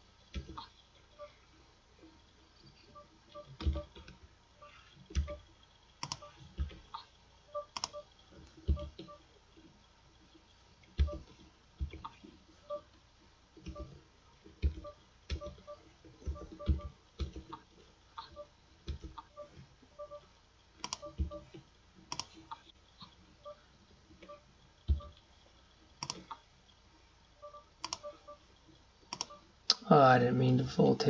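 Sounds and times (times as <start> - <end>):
computer mouse clicking: 0.3 - 0.7, 3.4 - 5.4, 6.0 - 9.2, 13.6 - 19.4, 20.8 - 23.1, 26.0 - 26.4, 27.8 - 28.1, 29.1 - 29.4.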